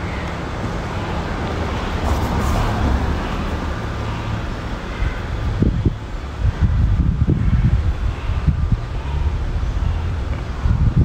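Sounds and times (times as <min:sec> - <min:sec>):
low outdoor rumble: 0:00.0 - 0:11.0
wind buffeting microphone: 0:00.0 - 0:11.0.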